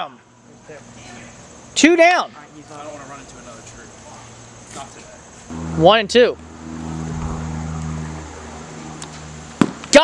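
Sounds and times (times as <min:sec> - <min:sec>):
vehicle engine hum: 0:02.6 - 0:09.7.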